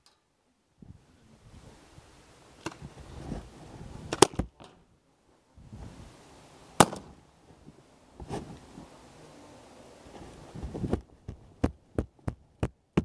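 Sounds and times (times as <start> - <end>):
rustling movement: 1.4 - 12.4
paintball pistol shots: 6.8 - 7.2.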